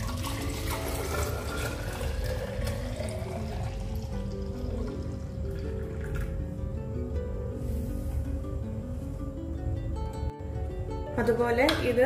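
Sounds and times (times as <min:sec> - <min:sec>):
liquid pouring into glass: 0:00.0 - 0:06.4.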